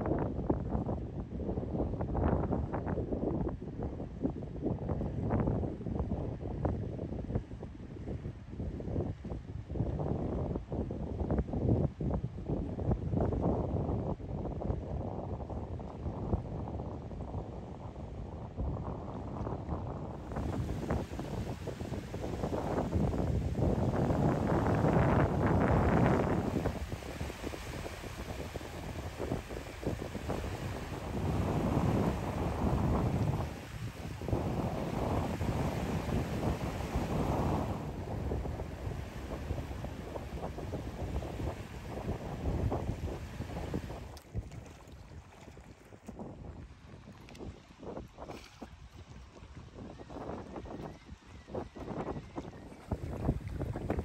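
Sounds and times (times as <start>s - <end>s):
wind buffeting microphone: 0.0s - 54.0s
water lapping: 20.2s - 46.0s.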